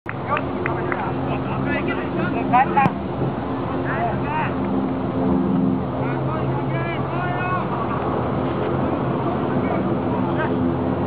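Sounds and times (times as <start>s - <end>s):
steady low hum: 0.1s - 11.0s
people shouting and calling: 6.2s - 8.0s.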